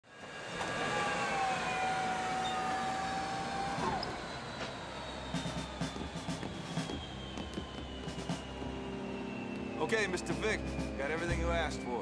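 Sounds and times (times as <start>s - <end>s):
jet turbine engines whining: 0.0s - 12.0s.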